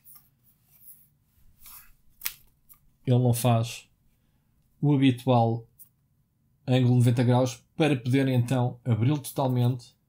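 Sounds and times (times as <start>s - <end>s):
hands rubbing on laptop: 0.0s - 2.3s.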